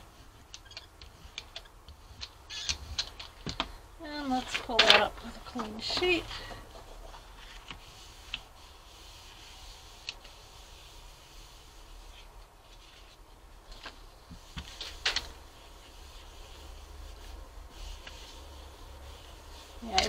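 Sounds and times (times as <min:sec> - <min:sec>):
light taps and brushes: 0:00.0 - 0:20.0
low steady hum: 0:00.0 - 0:20.0
paper rustling: 0:00.2 - 0:20.0.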